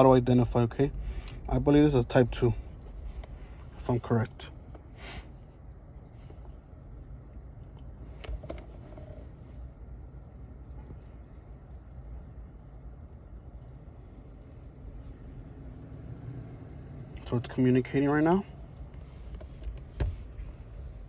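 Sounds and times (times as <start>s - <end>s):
faint low background rumble: 0.0s - 21.0s.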